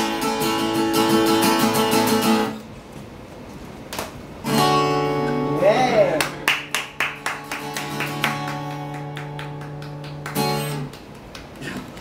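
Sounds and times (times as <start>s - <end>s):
acoustic guitar strumming: 0.0s - 2.6s, 4.4s - 10.9s.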